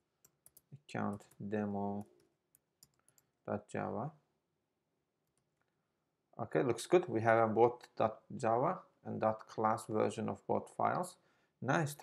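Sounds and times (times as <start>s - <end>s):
person speaking: 0.7s - 2.2s, 6.4s - 12.0s.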